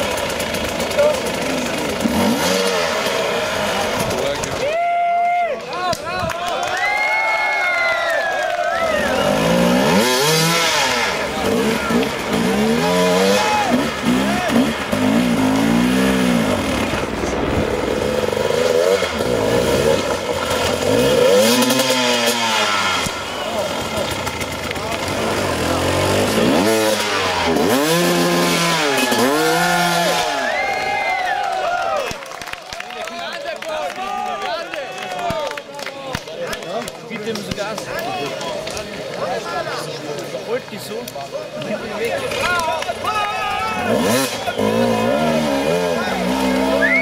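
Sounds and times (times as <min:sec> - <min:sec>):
dirt bike engine revving: 0:00.0 - 0:04.7, 0:08.8 - 0:31.3, 0:41.7 - 0:47.0.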